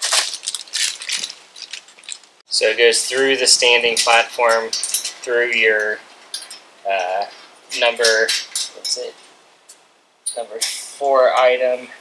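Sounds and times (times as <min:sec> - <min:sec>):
plastic bag crinkling: 0:00.0 - 0:02.4
small metal clinks: 0:00.1 - 0:02.4, 0:03.1 - 0:11.0.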